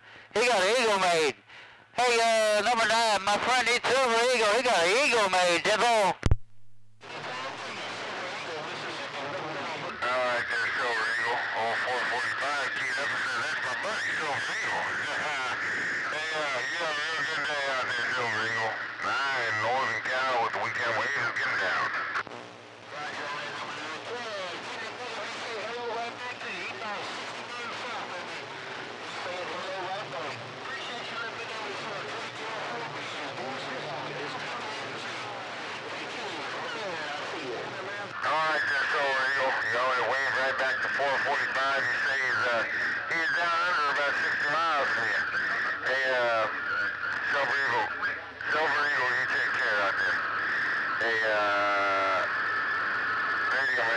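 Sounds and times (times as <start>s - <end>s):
garbled radio voices: 0.3s - 1.4s, 2.0s - 6.3s, 7.0s - 53.9s
radio static: 0.3s - 53.9s.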